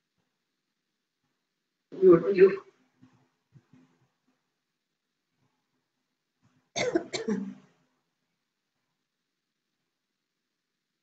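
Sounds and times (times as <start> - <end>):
person coughing: 6.8 - 7.6.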